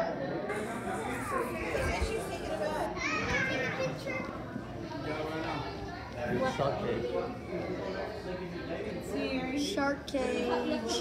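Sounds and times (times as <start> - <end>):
children chattering: 0.4 - 11.0.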